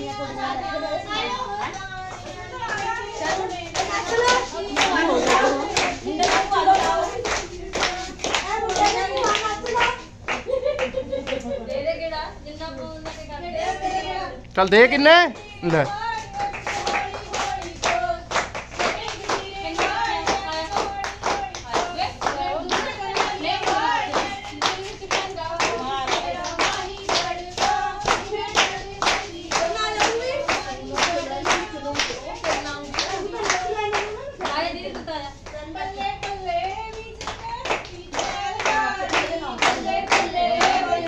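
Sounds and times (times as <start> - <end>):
women singing together: 0.0 - 14.5, 15.3 - 41.0
hands clapping in unison: 2.2 - 11.5.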